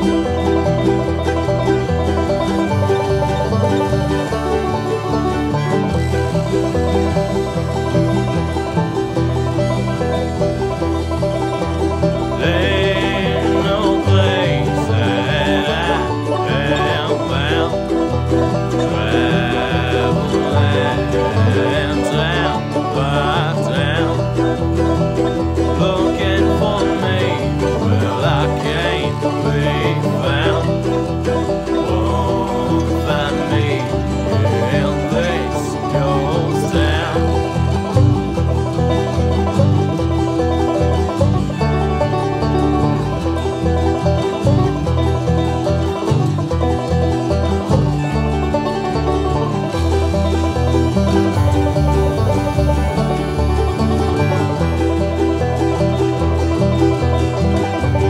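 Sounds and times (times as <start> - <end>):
banjo picking: 0.0 - 58.0
bluegrass string band: 0.0 - 58.0
wavering lead melody: 0.0 - 58.0.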